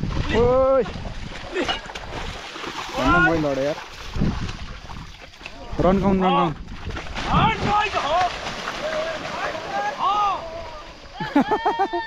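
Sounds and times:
oxen splashing in mud: 0:00.0 - 0:05.8, 0:06.6 - 0:11.1
man calling to ox team: 0:03.0 - 0:03.8, 0:05.7 - 0:06.6.

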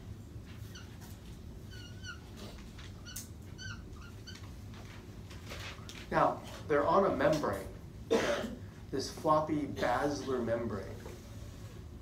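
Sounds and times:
marker squeaking on whiteboard: 0:00.6 - 0:04.8.

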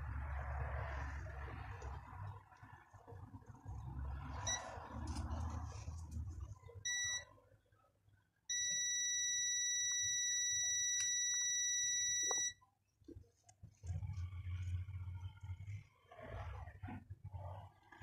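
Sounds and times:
multimeter continuity beeps: 0:04.5 - 0:04.7, 0:06.8 - 0:07.3, 0:08.5 - 0:12.6.

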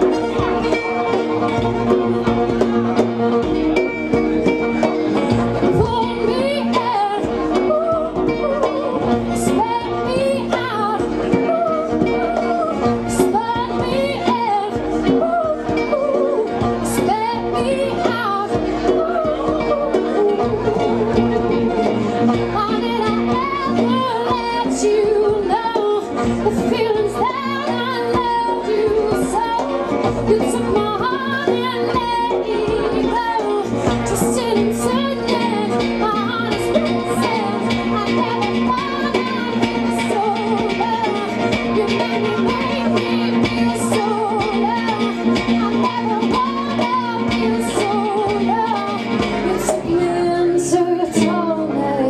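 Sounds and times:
strummed acoustic guitar: 0:00.0 - 0:52.0
violin line: 0:00.0 - 0:52.0
woman singing: 0:05.6 - 0:52.0.

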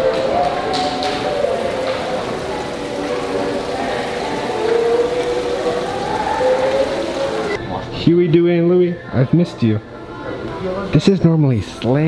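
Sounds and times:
fountain water splashing: 0:00.0 - 0:07.6
music of held gliding notes: 0:00.0 - 0:07.6.

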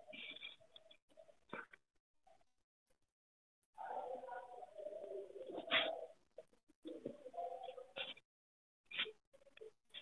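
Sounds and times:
pigeon cooing: 0:03.8 - 0:06.2.

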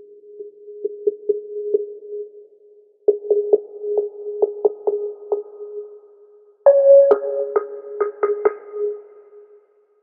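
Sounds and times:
electronic music held tone: 0:06.7 - 0:09.4.

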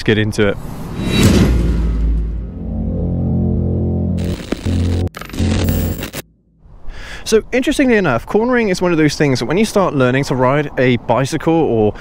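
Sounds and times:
sharp hits with noisy swells: 0:00.6 - 0:05.1
low sustained bass tone: 0:02.2 - 0:05.8.

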